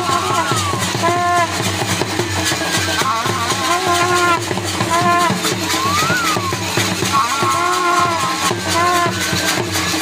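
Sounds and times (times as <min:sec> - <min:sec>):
drums beating fast rhythm: 0:00.0 - 0:10.0.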